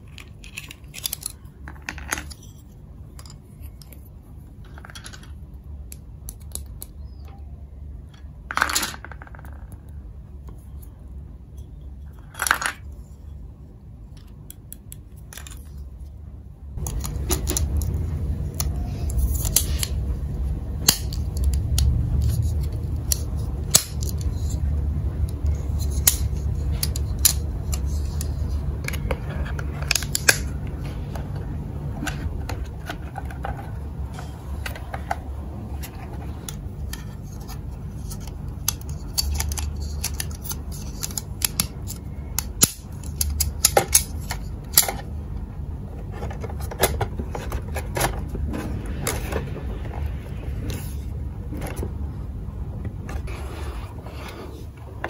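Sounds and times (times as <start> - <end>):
plastic toy parts clicking: 0.0 - 2.5, 4.7 - 7.0, 25.2 - 30.5, 35.8 - 45.1
low steady hum: 0.0 - 55.0.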